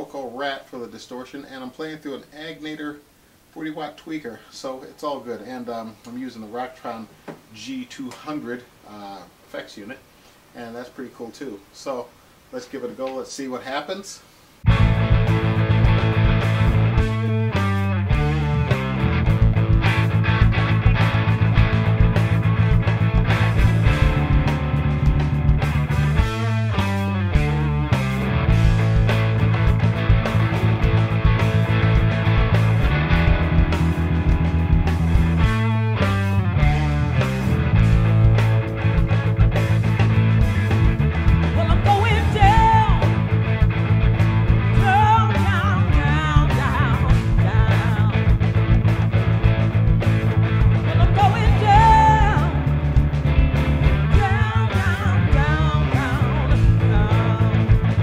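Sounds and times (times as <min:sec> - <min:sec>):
distorted electric guitar: 0:14.6 - 0:58.0
full-band backing track: 0:14.7 - 0:58.0.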